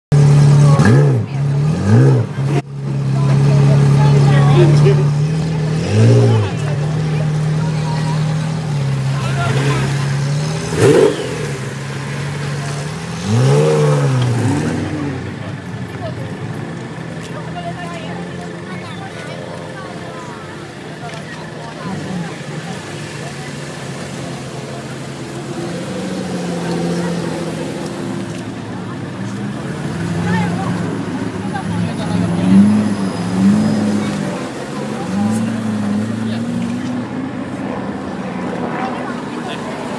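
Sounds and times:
car engines idling: 0:00.1 - 0:39.9
car engines revving: 0:00.1 - 0:39.9
crowd chatter: 0:00.1 - 0:39.9.

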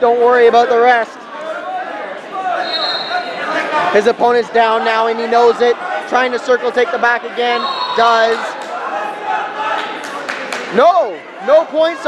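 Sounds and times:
people calling out in a hall: 0:00.0 - 0:12.0.

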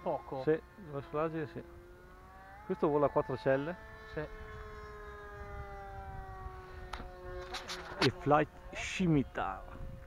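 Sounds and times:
model plane electric motor whine: 0:00.0 - 0:10.0.

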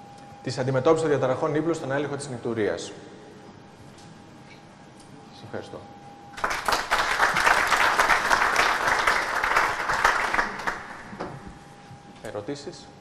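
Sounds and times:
audience applauding: 0:06.4 - 0:11.2.

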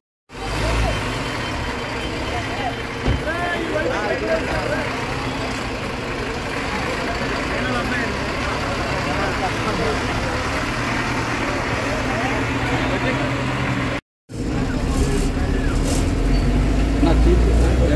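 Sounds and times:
bus engine running: 0:00.3 - 0:17.9
crowd talking: 0:00.3 - 0:17.9.

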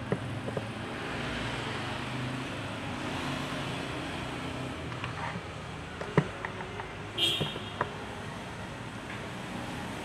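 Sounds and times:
street traffic hum: 0:00.0 - 0:10.0.

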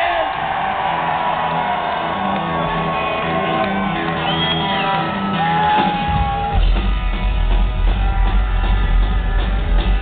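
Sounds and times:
crowd whooping: 0:00.0 - 0:10.0
rockabilly band playing: 0:01.5 - 0:10.0.

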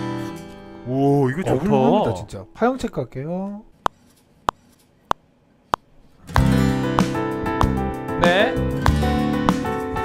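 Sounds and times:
backing band of bass piano drums: 0:06.4 - 0:10.0.

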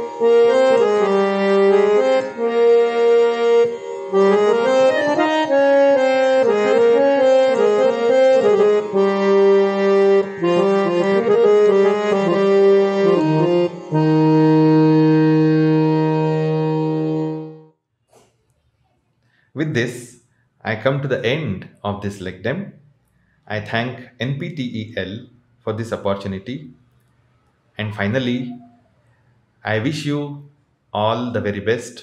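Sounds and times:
harmonium playing held notes: 0:00.0 - 0:17.8.

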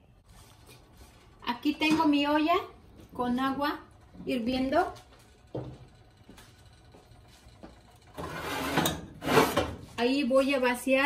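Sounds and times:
rubbing and scraping handling noises: 0:08.2 - 0:10.2.

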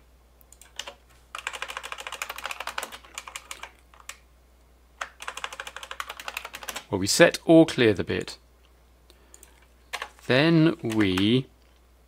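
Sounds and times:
typing on computer keyboard: 0:00.5 - 0:04.2, 0:05.0 - 0:06.9, 0:09.3 - 0:10.1, 0:10.8 - 0:11.3.

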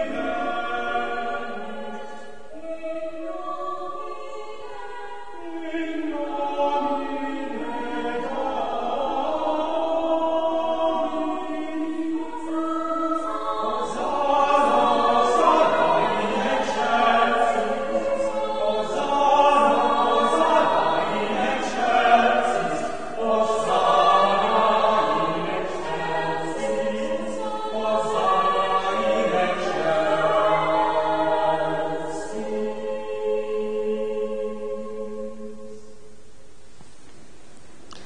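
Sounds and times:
choir singing sustained chords: 0:00.0 - 0:36.7.

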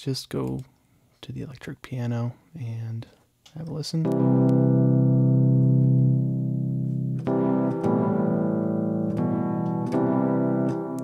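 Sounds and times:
electric piano chords: 0:04.0 - 0:11.0.

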